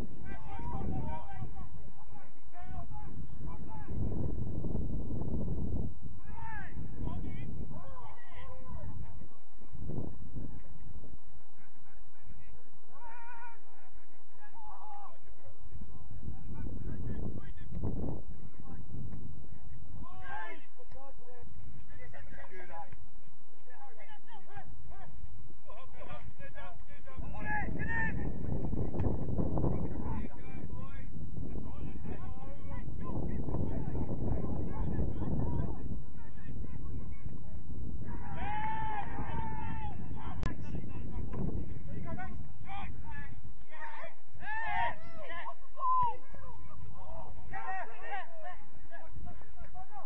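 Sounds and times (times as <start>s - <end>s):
distant shouts of players: 0.0s - 4.1s, 6.2s - 9.4s, 11.5s - 16.0s, 29.7s - 50.0s
wind rumble on microphone: 0.0s - 50.0s
player shouting: 38.1s - 40.2s, 42.6s - 48.7s.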